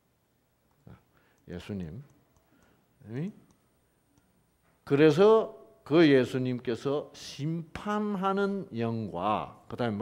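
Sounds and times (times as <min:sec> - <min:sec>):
man speaking: 0:00.9 - 0:02.1, 0:03.0 - 0:03.4, 0:04.9 - 0:10.0.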